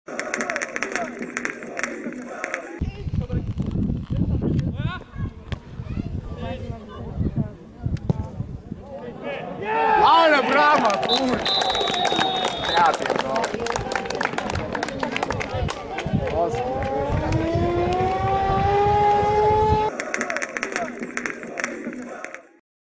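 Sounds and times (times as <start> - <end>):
wind rumbling on microphone: 2.8 - 8.9, 13.7 - 19.9.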